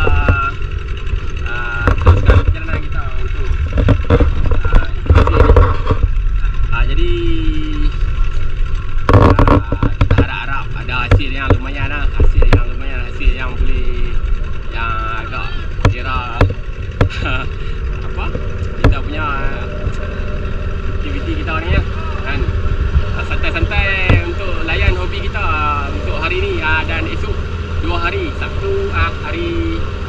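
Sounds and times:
hull knocking on water: 0:00.0 - 0:06.2, 0:08.6 - 0:13.7, 0:15.6 - 0:21.0, 0:21.6 - 0:25.3
outboard motor running: 0:00.0 - 0:30.0
voices: 0:00.0 - 0:30.0.

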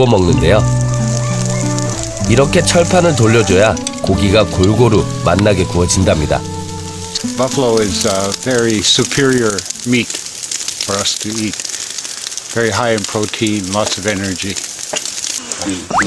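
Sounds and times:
man talking: 0:00.0 - 0:00.8, 0:02.2 - 0:06.5, 0:07.2 - 0:10.2, 0:10.8 - 0:11.6, 0:12.5 - 0:14.6, 0:15.6 - 0:16.0
steaks sizzling on grill: 0:00.0 - 0:16.0.

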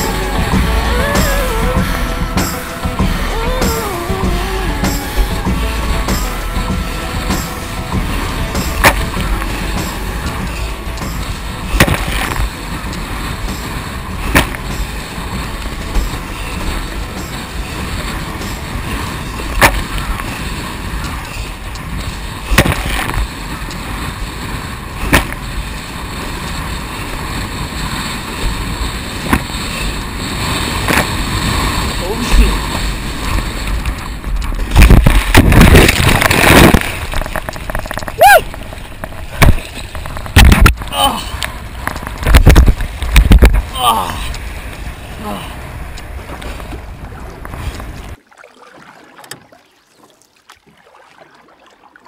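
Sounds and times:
board knocking on waves: 0:00.0 - 0:49.6
wind and water rushing: 0:00.0 - 0:52.0
small crackles and drips: 0:47.4 - 0:52.0.

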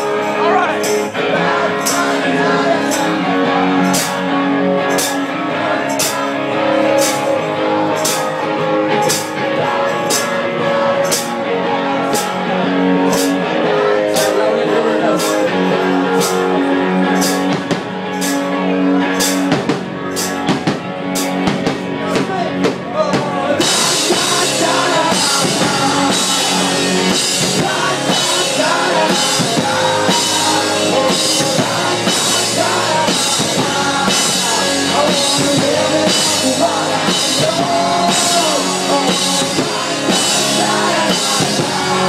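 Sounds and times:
person singing: 0:00.0 - 0:18.4, 0:22.9 - 0:42.0
drum kit: 0:00.0 - 0:42.0.

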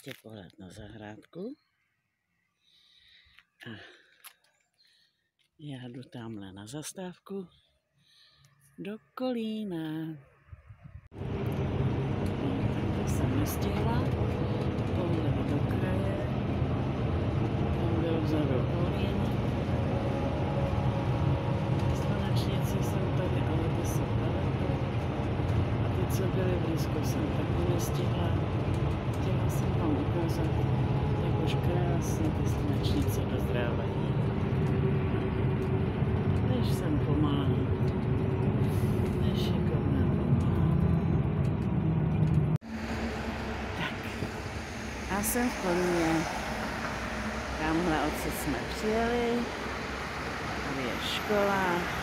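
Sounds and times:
bus engine and road rumble: 0:09.8 - 0:52.0
street traffic noise: 0:09.8 - 0:52.0.

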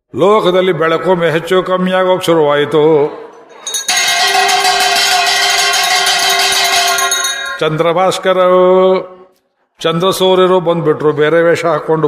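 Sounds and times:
handbell ringing rapidly: 0:03.6 - 0:07.6.

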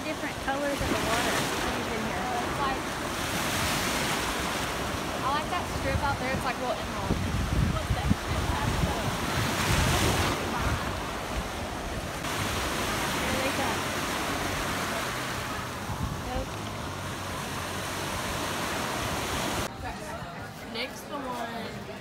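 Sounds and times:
small waves breaking in shallow water: 0:00.0 - 0:19.7.

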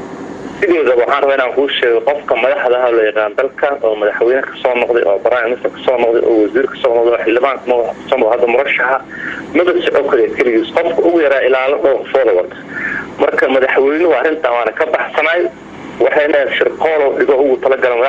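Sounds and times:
man talking: 0:00.6 - 0:18.0.

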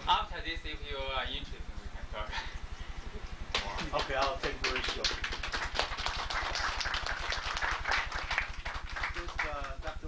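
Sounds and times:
low electrical buzz: 0:00.0 - 0:10.0
small audience clapping: 0:03.5 - 0:10.0.

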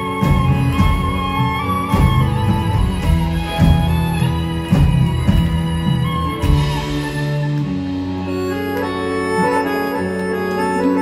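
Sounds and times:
live band playing: 0:00.0 - 0:11.0
reedy accordion-like held notes: 0:00.0 - 0:11.0.

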